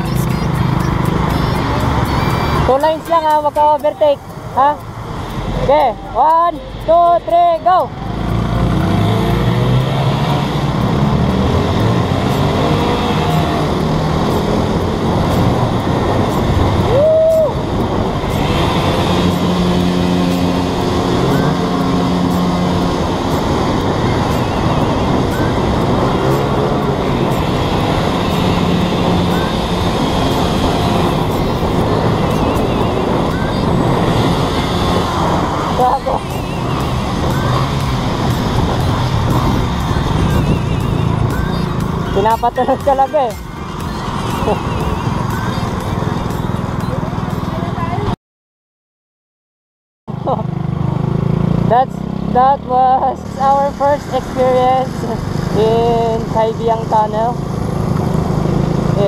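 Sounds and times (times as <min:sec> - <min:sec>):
motorcycle engines droning: 0:00.0 - 0:48.1, 0:50.1 - 0:59.0
wind rush on microphone: 0:09.4 - 0:47.2.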